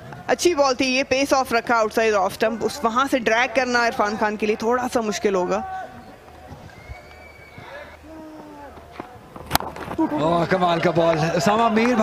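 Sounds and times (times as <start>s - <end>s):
distant shouts and calls: 2.4s - 8.9s.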